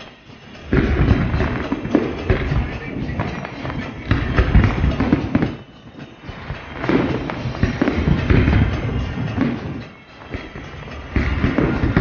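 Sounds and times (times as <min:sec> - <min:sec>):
fireworks booms and crackling: 0:00.0 - 0:12.0.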